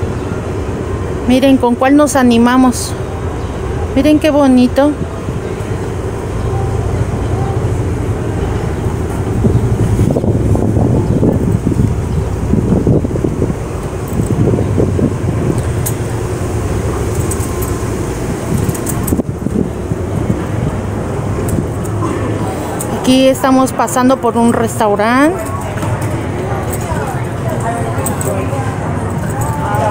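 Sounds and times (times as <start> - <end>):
indistinct voices: 0.0 - 29.9
road traffic rumble: 0.0 - 29.9.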